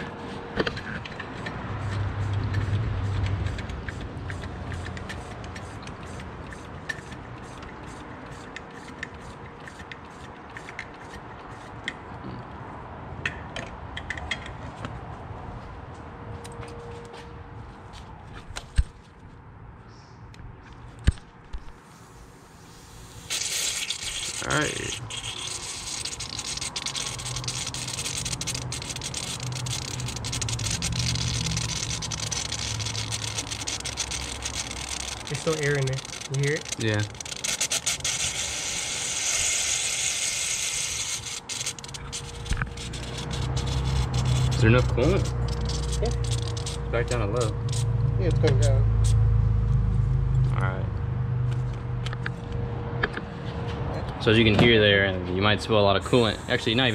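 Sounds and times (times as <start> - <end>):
air and coolant hissing: 21.8 - 42.6.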